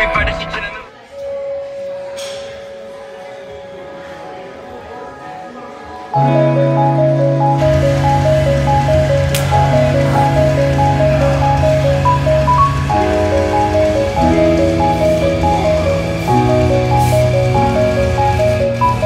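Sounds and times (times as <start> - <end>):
instrumental background music: 6.2 - 19.0.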